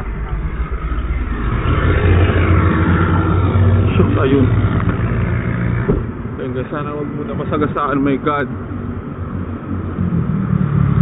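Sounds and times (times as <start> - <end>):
car engine running: 0.0 - 11.0
tyre and road noise: 0.0 - 11.0.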